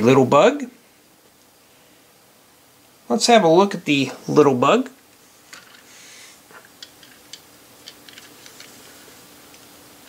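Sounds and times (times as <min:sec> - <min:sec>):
plastic clicks: 0:06.6 - 0:08.8.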